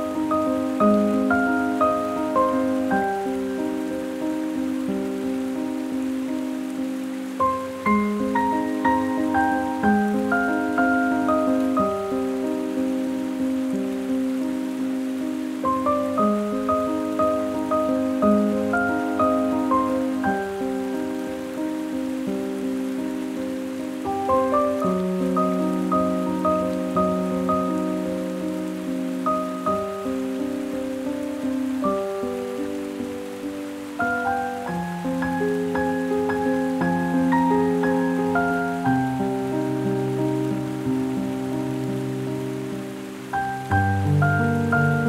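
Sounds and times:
solo piano playing slow piece: 0.0s - 45.0s.

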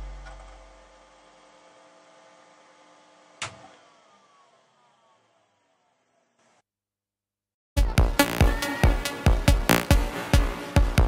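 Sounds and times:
falling electronic tones: 9.7s - 10.0s
sharp electronic hit: 9.7s - 10.1s.

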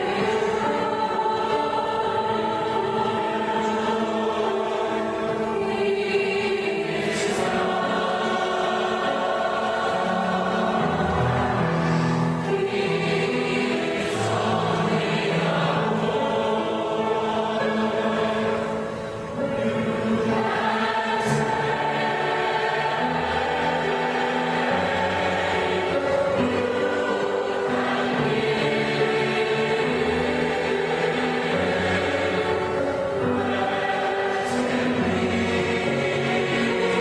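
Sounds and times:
mixed choir singing: 0.0s - 37.0s.

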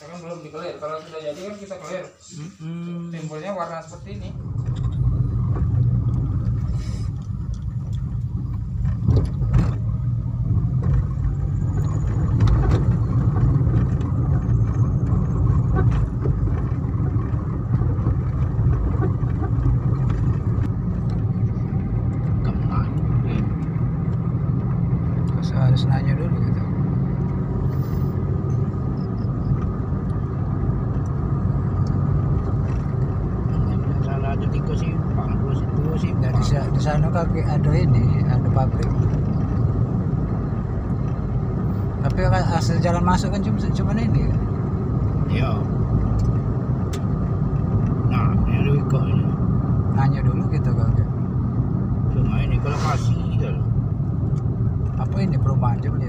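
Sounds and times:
car engine and tyres from inside: 2.6s - 56.0s.

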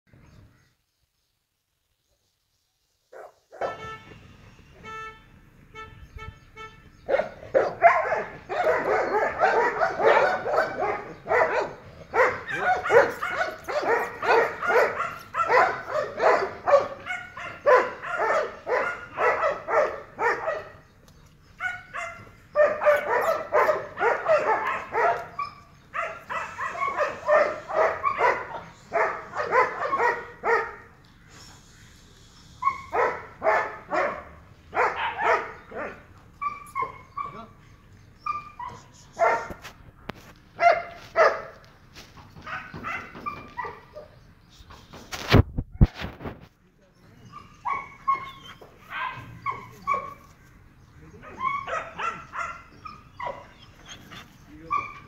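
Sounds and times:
dogs barking: 3.2s - 3.9s, 7.0s - 31.0s, 32.6s - 39.8s, 40.5s - 41.6s, 42.2s - 44.3s, 47.1s - 50.4s, 51.0s - 55.0s.

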